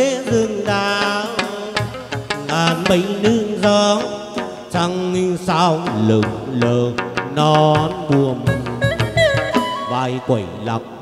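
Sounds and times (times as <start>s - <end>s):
drum and cymbal percussion: 0.0s - 10.0s
man singing ornamented vocals: 0.0s - 11.0s
moon lute: 1.3s - 5.0s, 5.7s - 11.0s.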